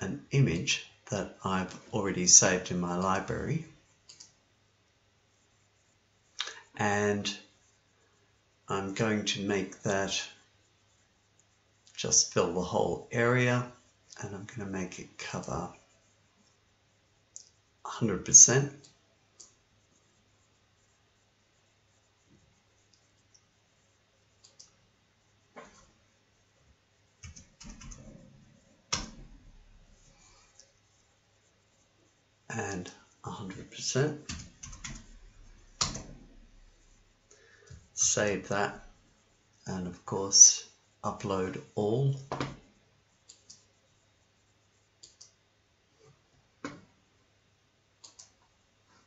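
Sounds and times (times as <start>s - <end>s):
computer mouse clicks: 4.0s - 4.4s, 18.8s - 19.6s, 24.4s - 24.8s, 28.9s - 29.5s, 34.3s - 36.6s, 43.3s - 43.7s, 45.0s - 45.4s, 48.0s - 48.5s.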